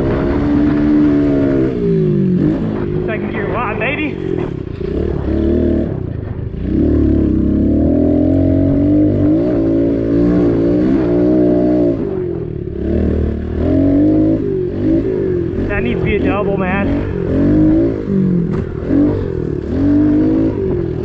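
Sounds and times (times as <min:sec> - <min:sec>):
pit bike engine revving: 0:00.0 - 0:21.0.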